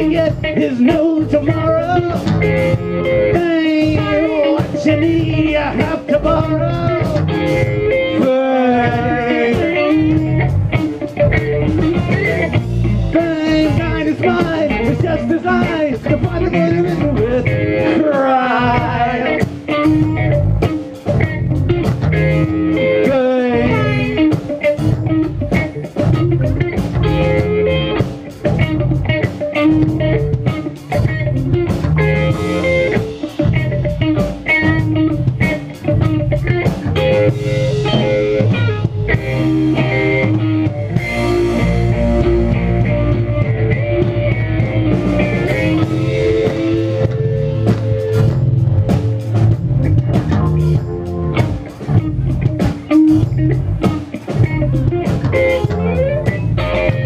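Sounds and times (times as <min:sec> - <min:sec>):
drum kit: 0:00.0 - 0:57.0
electric guitar lead: 0:00.0 - 0:57.0
second guitar: 0:00.0 - 0:57.0.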